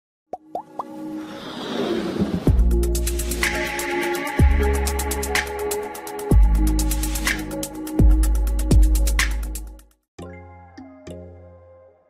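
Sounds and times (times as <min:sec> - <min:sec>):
rising whoosh: 0:01.1 - 0:02.9.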